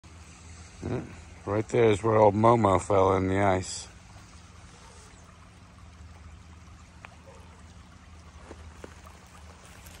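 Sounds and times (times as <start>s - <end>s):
creek water flowing: 0.0s - 10.0s.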